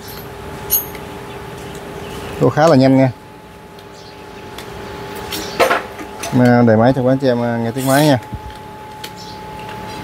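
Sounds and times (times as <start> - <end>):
metallic clink: 0.0 - 1.0
machine hum: 0.0 - 10.0.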